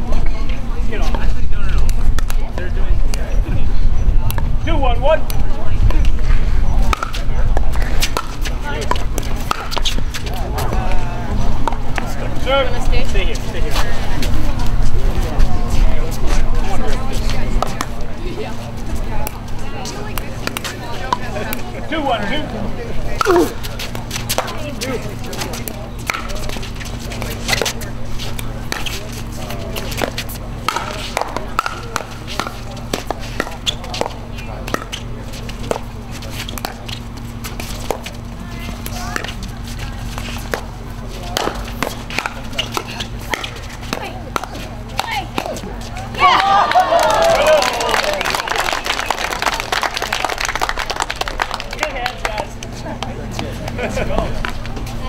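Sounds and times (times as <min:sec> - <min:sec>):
low hum: 0:00.0 - 0:55.0
pickleball paddles hitting ball: 0:06.8 - 0:12.1, 0:17.5 - 0:18.0, 0:23.2 - 0:48.1
spectators cheering and applauding: 0:46.2 - 0:52.5.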